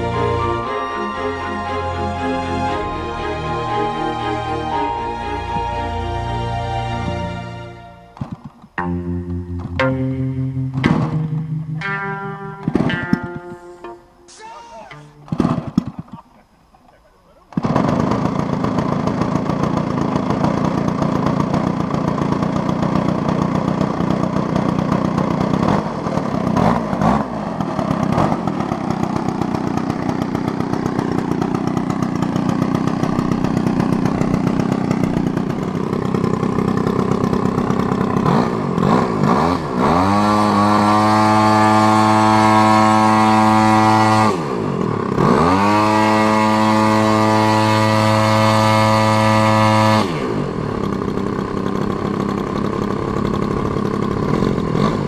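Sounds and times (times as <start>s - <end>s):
model airplane petrol engine: 0.0s - 55.0s.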